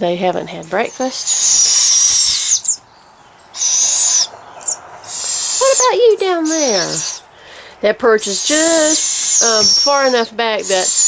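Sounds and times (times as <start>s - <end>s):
owlets raspy begging screeches: 0.5s - 11.0s.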